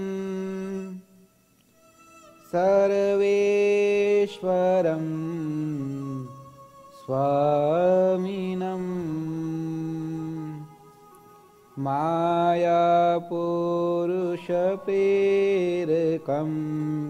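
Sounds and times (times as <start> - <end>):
man chanting: 0.0 - 1.0, 2.3 - 10.8, 11.7 - 17.0.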